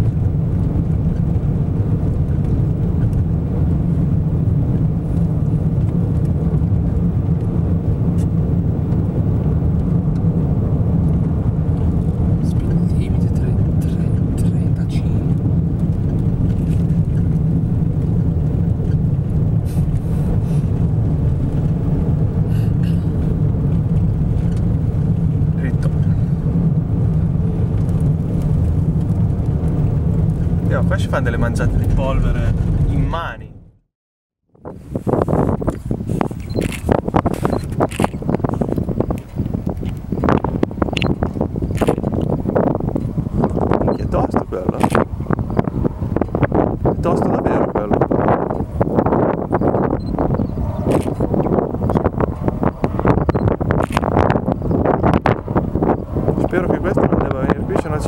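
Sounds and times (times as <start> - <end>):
wind and road noise in car: 0.0 - 33.8, 34.5 - 58.0.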